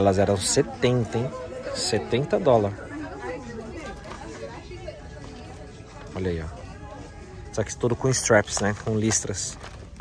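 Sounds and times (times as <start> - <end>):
people chattering quietly: 0.0 - 10.0.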